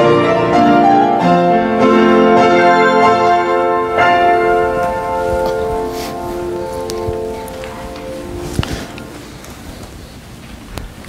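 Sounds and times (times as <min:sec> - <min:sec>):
piano chord ringing: 0:00.0 - 0:09.4.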